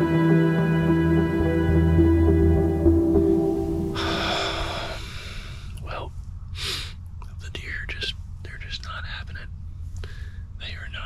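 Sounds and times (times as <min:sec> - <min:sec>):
breathy rush of air: 0:03.2 - 0:07.0
man whispering: 0:05.7 - 0:06.2, 0:06.9 - 0:09.6, 0:10.6 - 0:11.0.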